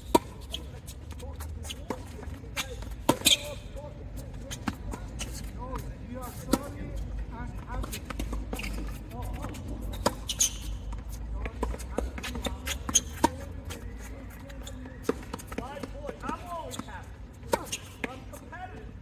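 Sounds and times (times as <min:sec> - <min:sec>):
distant tennis hits: 0:01.7 - 0:06.8, 0:17.5 - 0:18.5
tennis racket hitting ball: 0:17.5 - 0:18.2.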